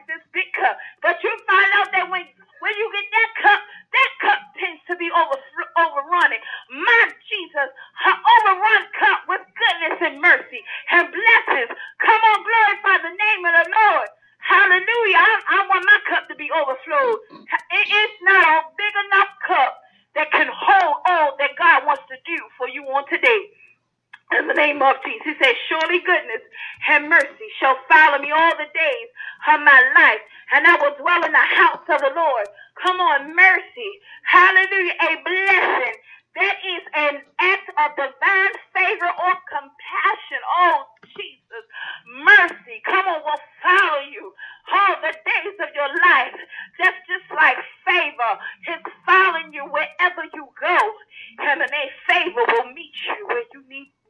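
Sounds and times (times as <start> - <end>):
preacher talking: 24.2 - 53.8.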